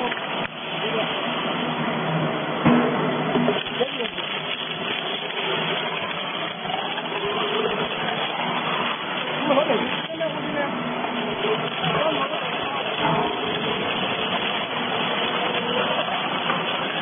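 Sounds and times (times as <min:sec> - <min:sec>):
sharp cracks: 0:03.3 - 0:17.0
shredder grinding: 0:03.5 - 0:17.0.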